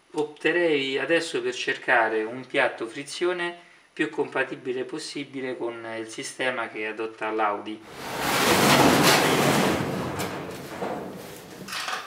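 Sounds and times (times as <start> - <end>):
metal garage door scraping open: 7.8 - 12.0.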